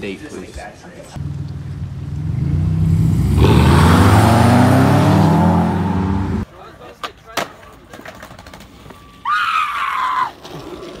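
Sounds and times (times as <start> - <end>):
high-pitched scream: 9.2 - 10.4.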